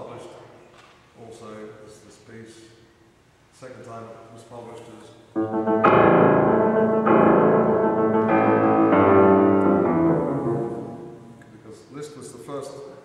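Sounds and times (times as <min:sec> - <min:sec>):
grand piano chords: 0:05.3 - 0:11.6.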